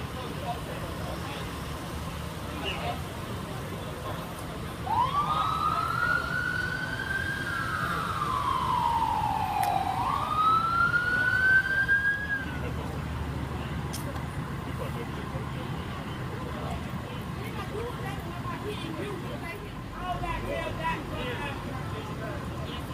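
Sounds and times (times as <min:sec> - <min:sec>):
emergency siren wailing: 0:04.6 - 0:13.0.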